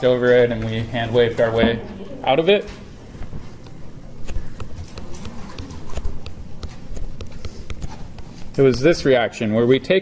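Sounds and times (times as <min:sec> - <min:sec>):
stylus tapping on tablet screen: 0:03.6 - 0:09.0.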